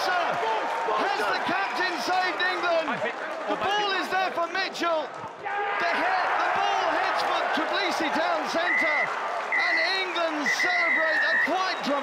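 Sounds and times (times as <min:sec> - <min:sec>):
applause: 0:00.0 - 0:12.0
crowd shouting and cheering: 0:00.0 - 0:12.0
high steady whistle: 0:08.7 - 0:11.6.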